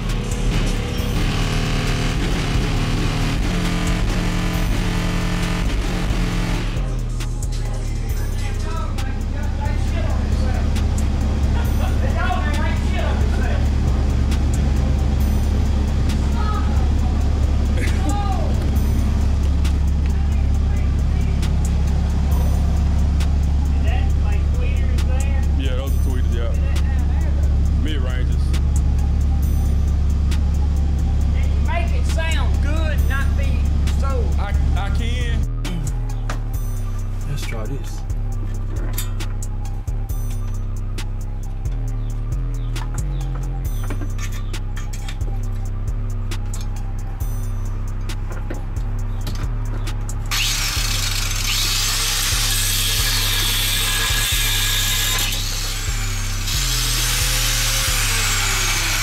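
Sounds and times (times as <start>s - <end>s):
car engine idling: 0.0s - 59.0s
music: 0.0s - 59.0s
voices: 7.2s - 40.0s.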